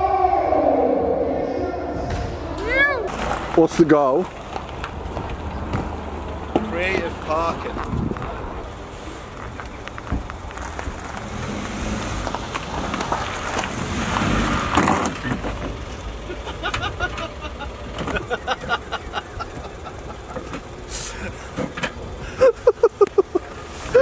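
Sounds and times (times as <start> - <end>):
voices: 0.0 - 11.2, 15.2 - 24.0
car engine and tyres on gravel: 2.8 - 24.0.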